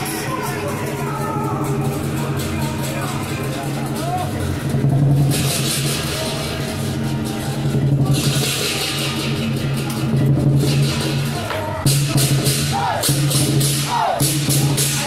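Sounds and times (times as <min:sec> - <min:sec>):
drum beating steadily: 0:00.0 - 0:15.0.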